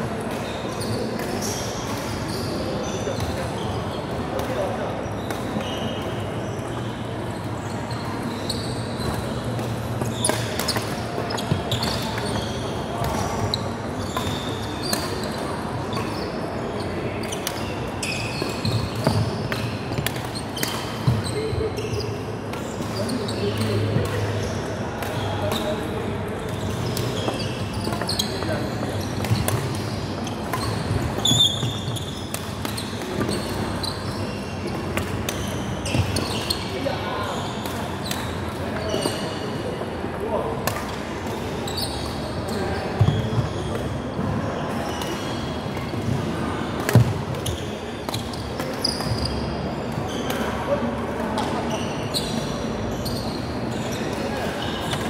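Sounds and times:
racket hitting shuttlecock: 46.8 - 49.2.

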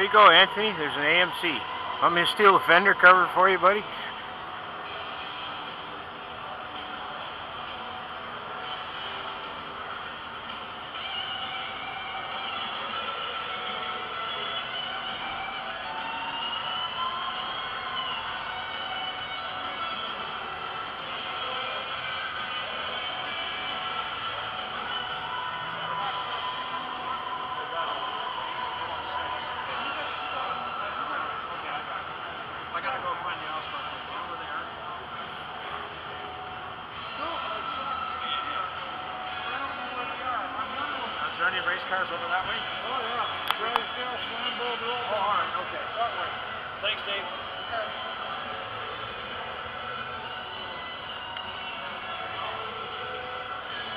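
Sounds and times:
background music: 0.0 - 53.9
crowd babble: 0.0 - 53.9.

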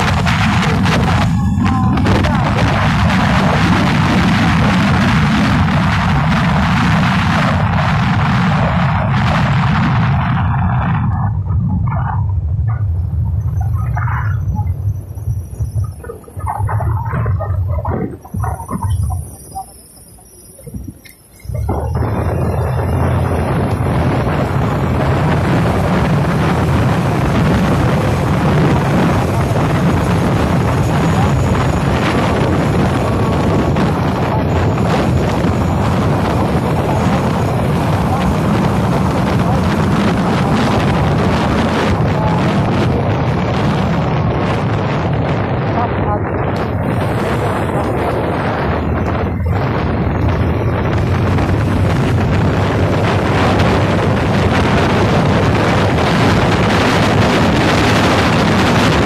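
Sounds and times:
moving vehicle rumble: 0.0 - 59.0
wind buffeting microphone: 0.0 - 59.0.

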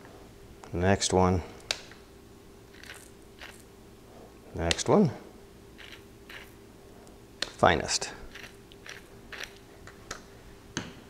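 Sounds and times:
pepper grinder grinding rasp: 2.7 - 3.7, 5.8 - 6.6, 8.3 - 9.6.

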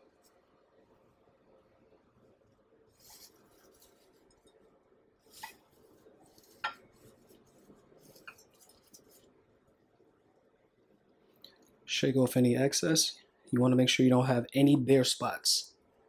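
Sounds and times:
shredded coconut rustling: 2.9 - 4.5, 5.2 - 9.4.

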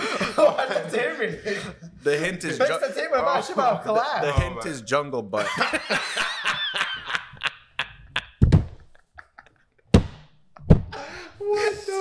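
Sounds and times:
laughter: 0.0 - 1.9, 5.4 - 9.8.

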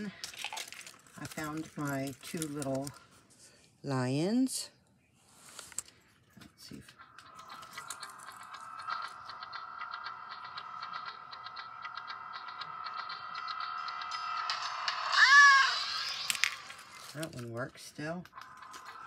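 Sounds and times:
electronic lion cry: 15.0 - 16.1.

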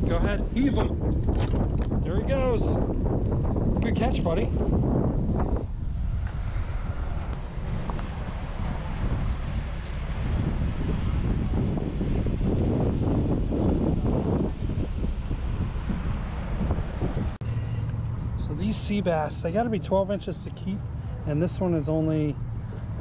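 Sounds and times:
wind buffeting microphone: 0.0 - 23.0
faint motorboats passing: 5.7 - 23.0.

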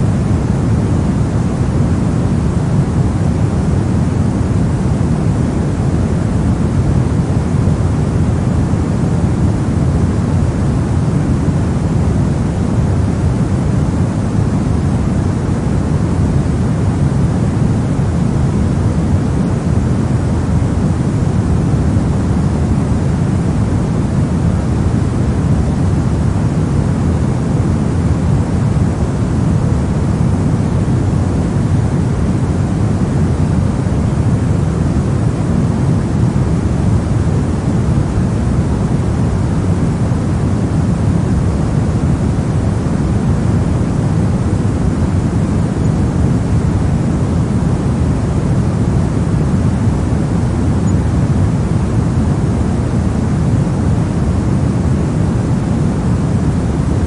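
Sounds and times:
steady pink noise hiss: 0.0 - 57.0.

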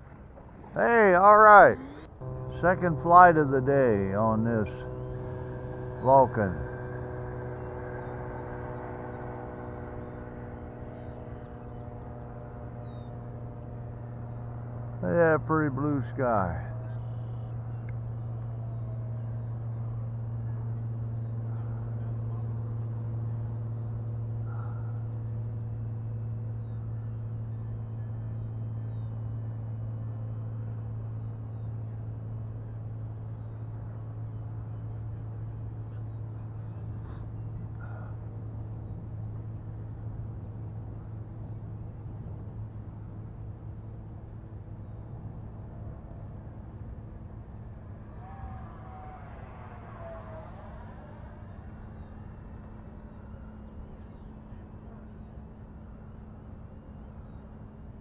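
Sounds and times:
steady low hum: 0.0 - 58.0
model jet whine passing: 0.5 - 31.6, 45.1 - 56.8.

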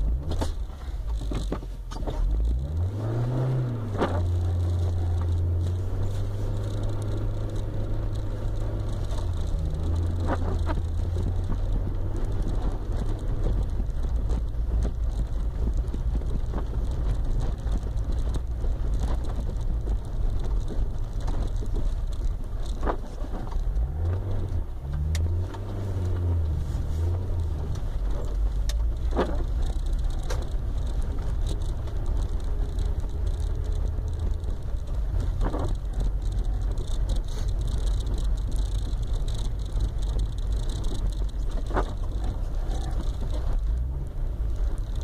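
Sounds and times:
engine and tyres rumbling: 0.0 - 45.0.

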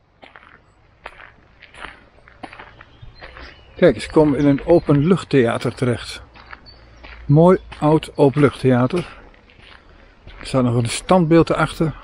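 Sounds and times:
footsteps on dirt and gravel: 0.0 - 12.0.

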